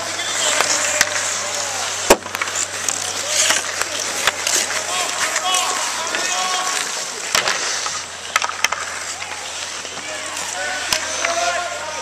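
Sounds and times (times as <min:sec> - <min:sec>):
skates scraping on ice: 0:00.0 - 0:12.0
stick hitting puck: 0:00.1 - 0:11.7.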